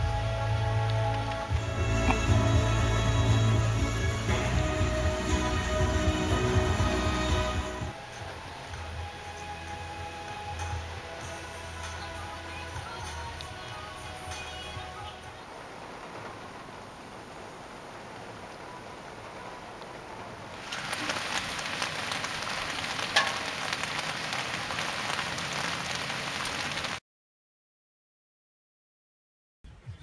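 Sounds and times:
gutter runoff running: 0.0 - 27.0
rain on a car: 0.0 - 27.0
rain on pavement: 0.0 - 27.0.

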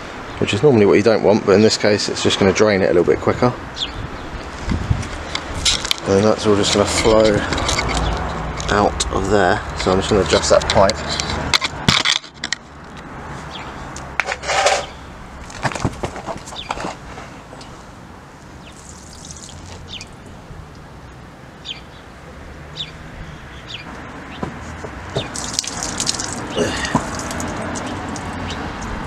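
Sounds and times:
water stream splashing into puddle: 18.7 - 20.1, 25.2 - 28.3.

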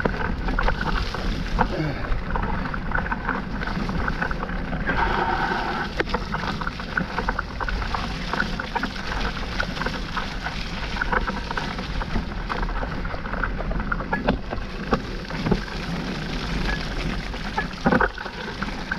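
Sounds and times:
bike and chain rattling: 0.0 - 18.9
bike tyres rumbling on mud: 0.0 - 18.9
wind rumble on microphone: 0.0 - 18.9.

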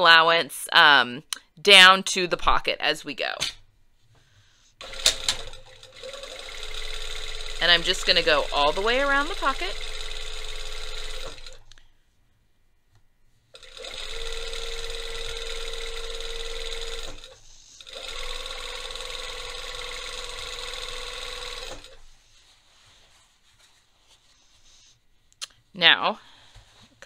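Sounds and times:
sewing machine stitching: 4.8 - 11.7, 13.6 - 22.1.

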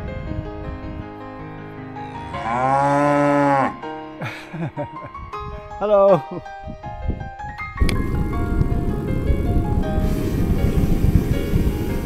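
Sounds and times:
cow mooing: 2.1 - 3.8.

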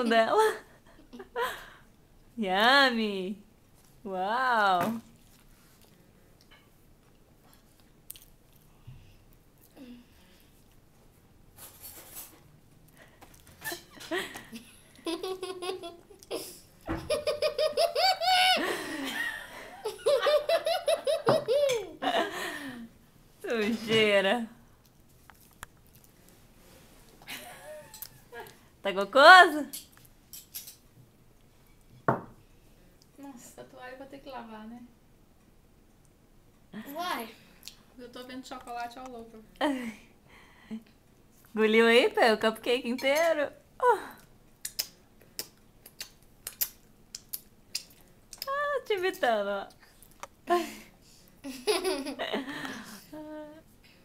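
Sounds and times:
person chewing with wet clicks: 7.1 - 8.7, 24.8 - 26.4, 44.5 - 48.5
young child laughing: 15.0 - 22.0, 51.4 - 53.6
lip smacks: 44.6 - 48.5.

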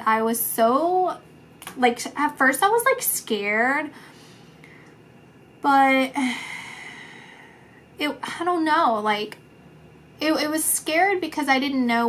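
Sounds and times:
woman sighing: 6.2 - 7.6.

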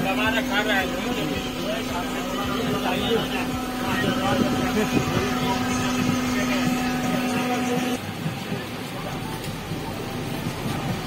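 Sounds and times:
passengers' voices: 0.0 - 11.0
train coach hum: 0.0 - 11.0.

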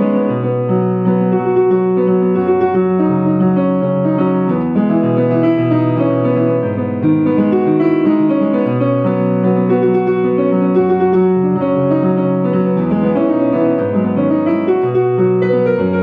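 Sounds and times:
solo piano: 0.0 - 16.0.

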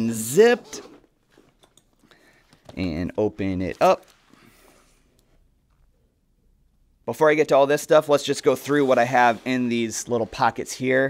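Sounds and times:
faint nylon rustle: 8.2 - 11.0.

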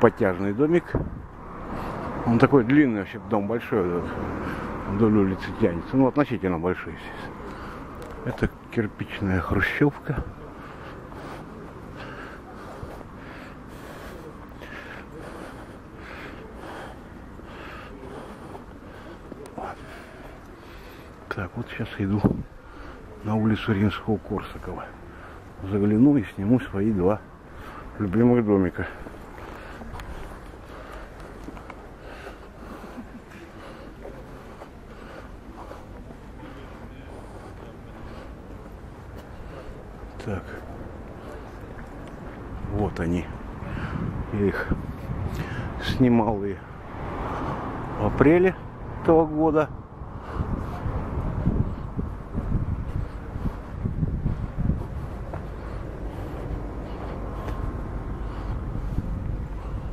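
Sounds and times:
low city rumble: 0.0 - 59.9.

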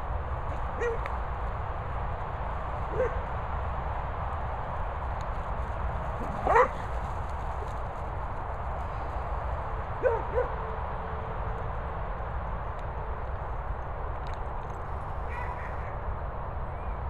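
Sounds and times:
dog barking: 0.8 - 1.0, 2.9 - 3.2, 6.4 - 6.8, 10.0 - 10.6.

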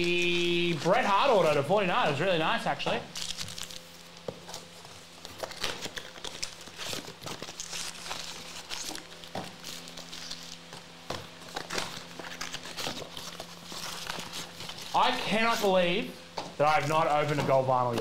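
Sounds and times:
foil packs crinkling: 0.0 - 18.0.

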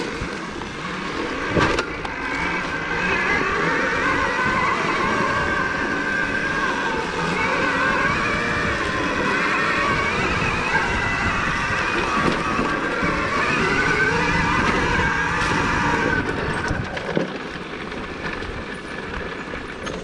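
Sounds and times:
electric motor whine: 0.0 - 19.6
drivetrain and tyre noise: 0.0 - 20.0.

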